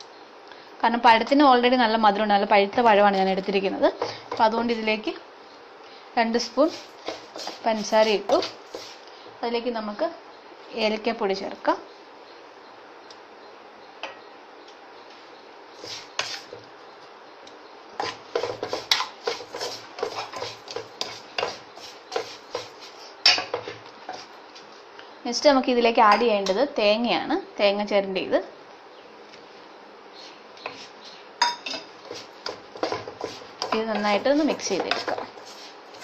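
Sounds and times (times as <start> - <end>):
voice: 0.8 - 5.2, 6.2 - 6.8, 7.6 - 8.5, 9.4 - 11.9, 25.3 - 28.5, 33.7 - 35.3
wooden spatula scraping a pan: 6.4 - 9.4, 15.8 - 16.7, 18.0 - 24.4, 30.2 - 36.0.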